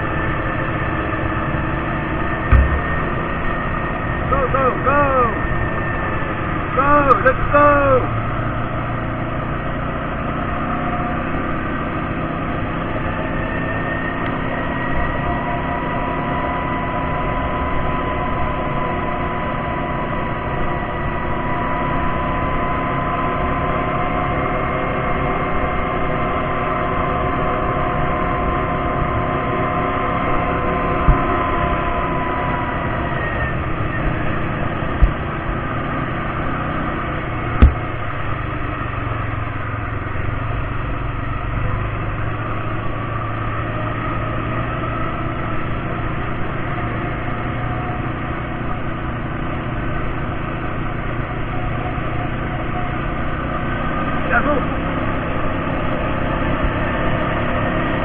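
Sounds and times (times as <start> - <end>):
atv engine whine: 0.0 - 58.0
sharp knocks: 2.5 - 3.2, 35.0 - 35.2, 37.6 - 38.0.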